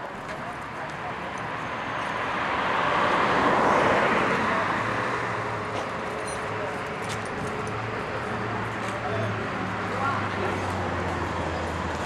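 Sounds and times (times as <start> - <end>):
car passing by: 1.8 - 5.8.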